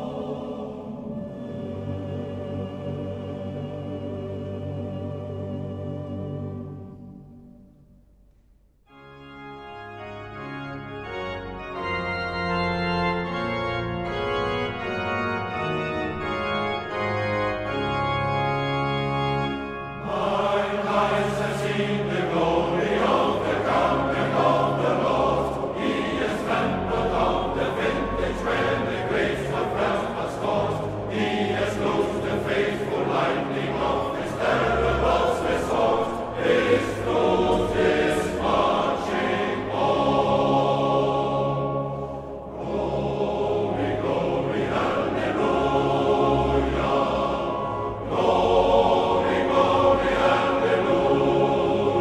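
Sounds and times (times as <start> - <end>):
choir singing: 0.0 - 7.3, 9.9 - 52.0
organ playing chords: 0.0 - 8.0, 8.9 - 52.0.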